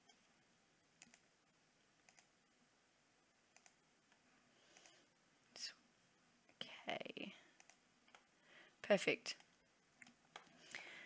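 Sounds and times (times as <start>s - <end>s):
computer mouse clicks: 1.0s - 1.3s, 2.0s - 2.3s, 3.5s - 5.0s, 7.6s - 8.3s, 9.3s - 10.6s.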